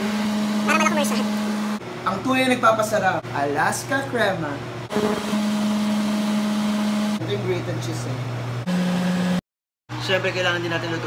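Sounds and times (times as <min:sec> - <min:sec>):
induction cooktop electrical hum: 0:00.0 - 0:11.0.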